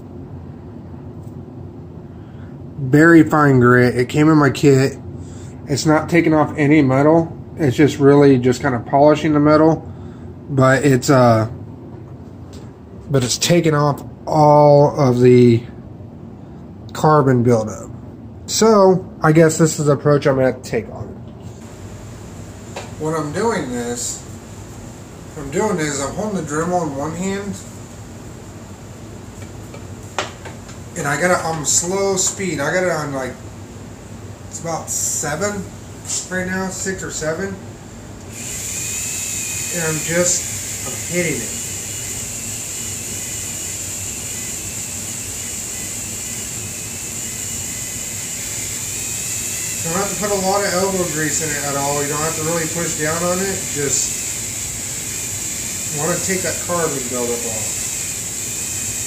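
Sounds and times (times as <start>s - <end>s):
even hiss: 21.4s - 59.0s
rotary tool whining: 38.2s - 59.0s.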